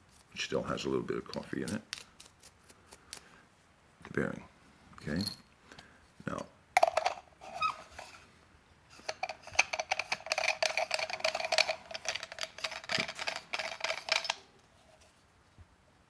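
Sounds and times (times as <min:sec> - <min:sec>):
grinder parts clicking: 0:09.0 - 0:14.4.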